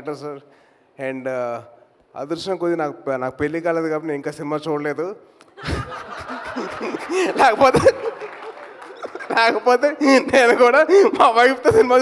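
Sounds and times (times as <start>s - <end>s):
man laughing into microphone: 5.6s - 11.4s.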